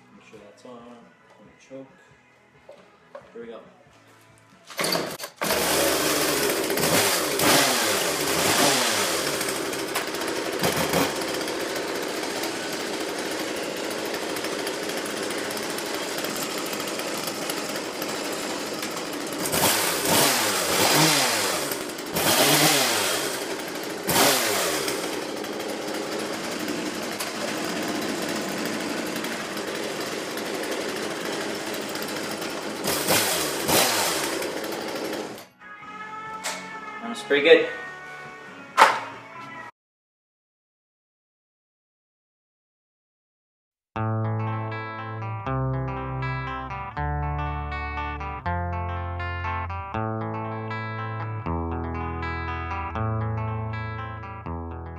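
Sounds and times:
chainsaw revving: 4.8s - 35.5s.

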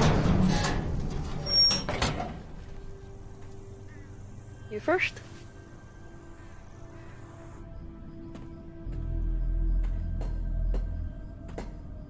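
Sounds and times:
heavy hatch scraping: 0.0s - 2.9s.

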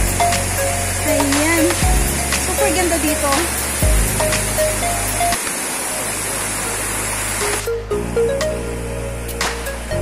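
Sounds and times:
background music: 0.0s - 5.4s, 7.1s - 10.0s
waterfall rushing over rocks: 0.0s - 7.9s.

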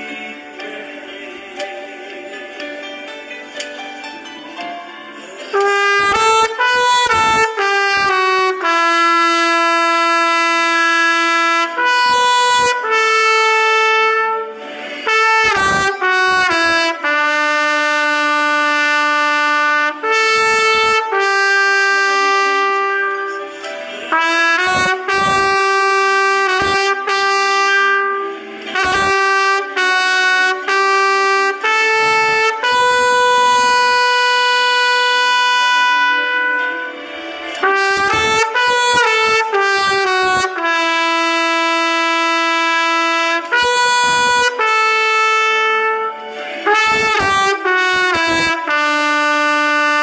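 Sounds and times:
trumpet holding a long note: 5.4s - 50.0s.

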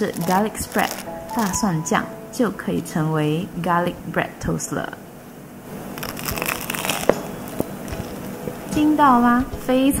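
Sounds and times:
toasted bread crust crunching: 0.0s - 1.6s, 5.8s - 8.3s.

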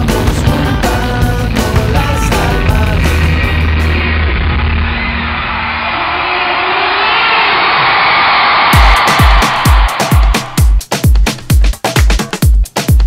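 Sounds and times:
crowd cheering and whooping: 3.8s - 10.8s
dance music over loudspeakers: 8.5s - 13.0s
heavy kick drum: 8.7s - 13.0s.

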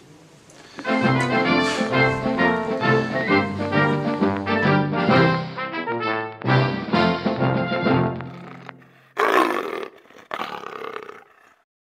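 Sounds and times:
roar-like animal calls: 8.3s - 11.6s.

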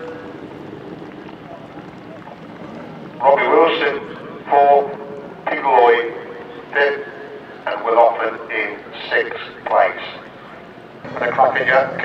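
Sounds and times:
background hiss: 2.5s - 12.0s
man talking: 3.2s - 10.2s, 11.0s - 12.0s.

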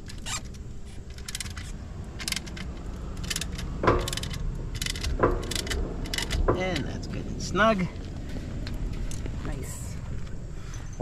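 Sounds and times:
ratchet wrench clicking: 0.0s - 6.9s
metal clinks: 0.5s - 7.0s.

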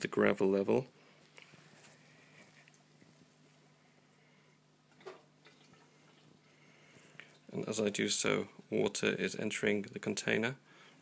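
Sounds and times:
aquarium air pump humming: 0.0s - 11.0s.

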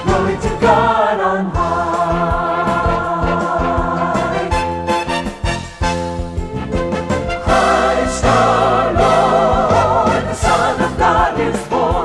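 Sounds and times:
choir singing with vibrato: 0.0s - 5.3s, 7.3s - 12.0s
instrumental accompaniment: 0.0s - 12.0s.

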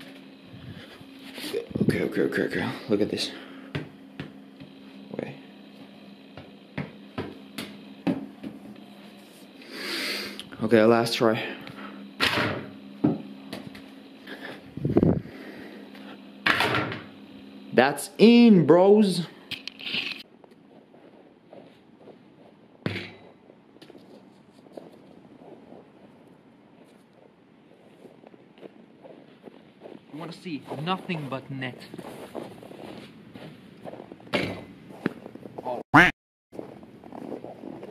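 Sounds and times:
footsteps on packed snow: 20.5s - 35.8s, 36.5s - 37.9s.

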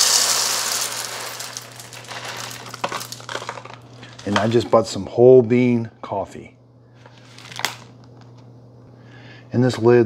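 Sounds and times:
coffee beans pouring onto plastic: 0.0s - 4.6s.

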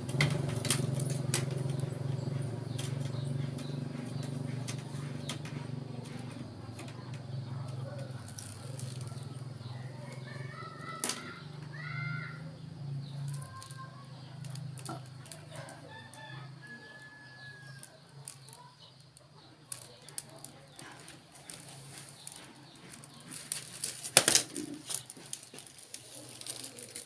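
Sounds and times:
faint rooster crowing: 15.5s - 18.4s.

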